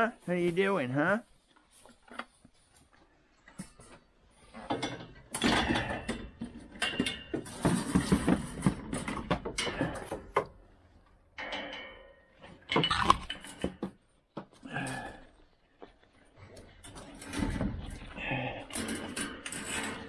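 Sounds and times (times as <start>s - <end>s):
plastic bucket clattering: 7.0s - 9.8s.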